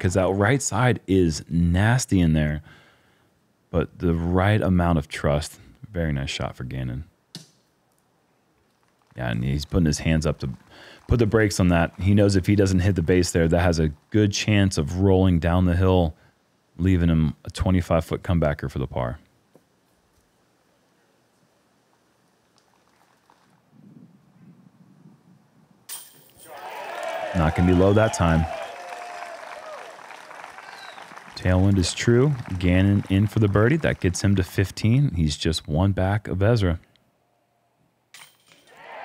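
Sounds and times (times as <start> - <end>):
crowd cheering: 8.9 - 14.2, 26.4 - 35.0, 38.7 - 39.0
disc hitting metal chains: 25.9 - 26.6, 38.1 - 38.7.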